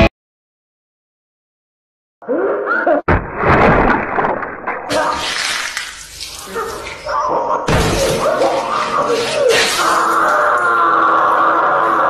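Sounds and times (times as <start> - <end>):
loud crash: 3.1 - 6.2.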